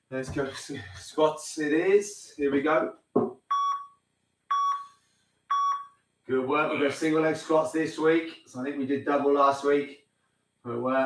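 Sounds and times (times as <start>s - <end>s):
short electronic beeps: 3.5s - 4.9s, 5.5s - 6.0s.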